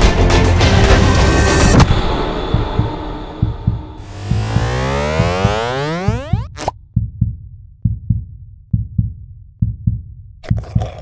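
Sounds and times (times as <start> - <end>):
low heartbeat thuds: 2.0 - 11.0
falling sweep of tones: 4.0 - 6.7.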